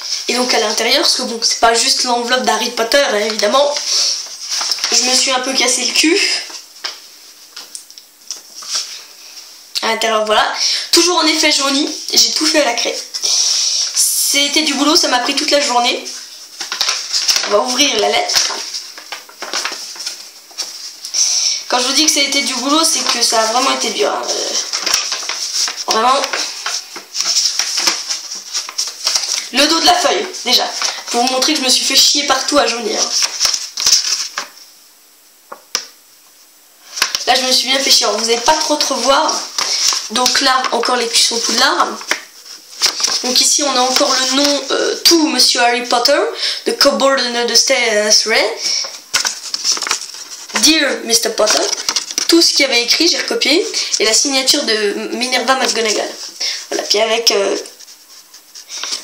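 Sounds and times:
paper envelope rustling: 3.1 - 7.7, 14.7 - 34.7, 36.8 - 45.5, 48.4 - 59.0.

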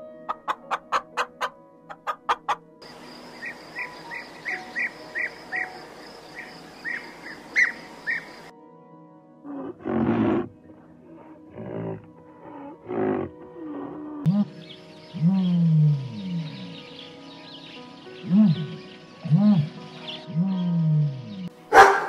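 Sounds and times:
small birds chirping: 2.8 - 8.5, 14.2 - 22.0.

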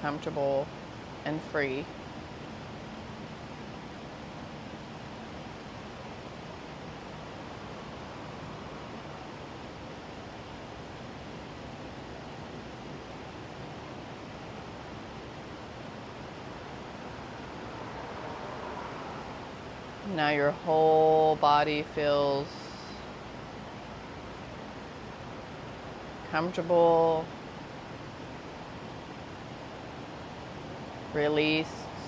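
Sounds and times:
outdoor background rush: 0.0 - 32.0.

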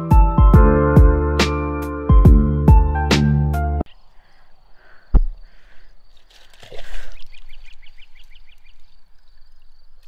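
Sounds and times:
bird chirping: 3.9 - 10.0
water splashing: 5.7 - 10.0.

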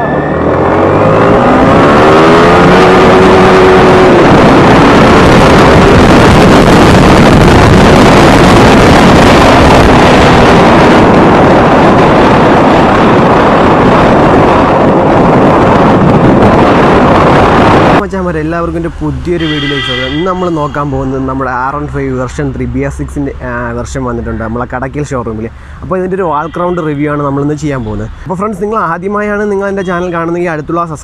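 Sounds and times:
motorcycle engine accelerating: 0.0 - 23.8
wind noise on microphone: 0.0 - 31.0.

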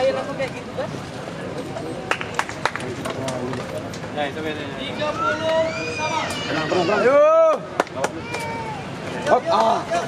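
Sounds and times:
drawn-out shout: 5.0 - 9.4.

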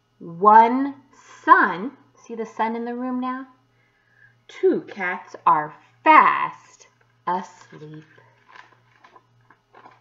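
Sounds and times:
steady low hum: 0.0 - 10.0
book pages rustling: 7.6 - 10.0.

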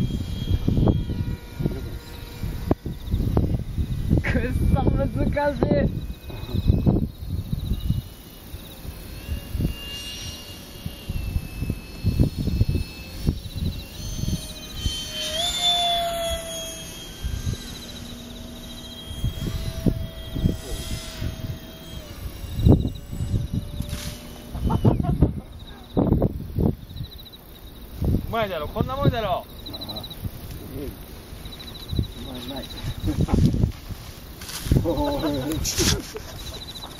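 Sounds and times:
model jets whining overhead: 0.0 - 36.9
wind rumble on microphone: 0.0 - 36.9.

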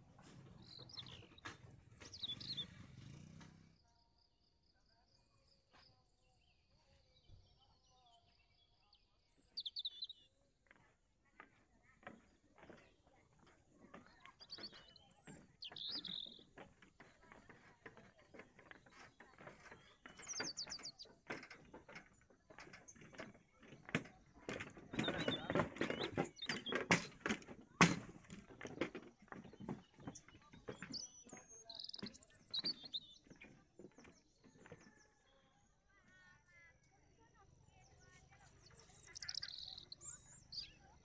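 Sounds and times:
birds chirping: 0.0 - 3.6, 5.6 - 41.0
irregular clicks and knocks: 12.0 - 34.9.

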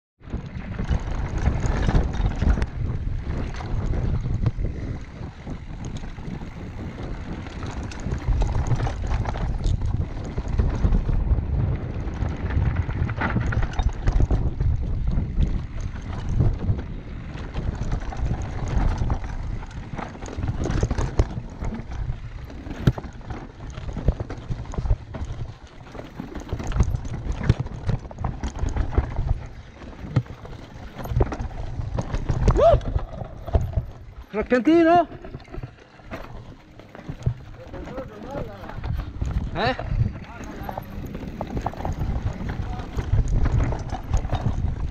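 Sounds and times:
bike frame and chain rattling: 0.2 - 44.9
tyres rumbling on dirt trail: 0.2 - 44.9
wind buffeting microphone: 0.2 - 44.9.

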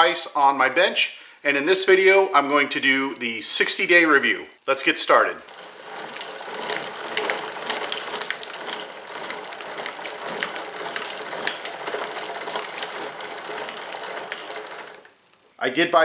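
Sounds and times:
woodworking vise rattling and clicking: 5.4 - 15.3.

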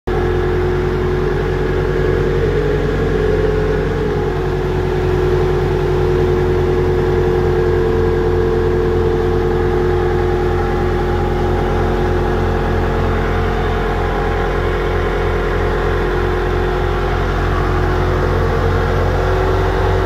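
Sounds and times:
air compressor engine droning: 0.1 - 20.0.

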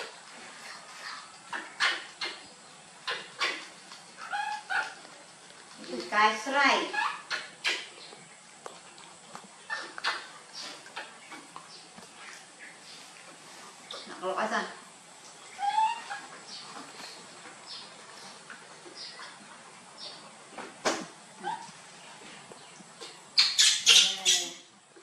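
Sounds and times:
animal yelps: 1.5 - 2.4, 3.0 - 5.0, 15.5 - 16.3, 21.4 - 21.7
baby monkey high-pitched call: 15.5 - 16.3, 23.4 - 24.7.

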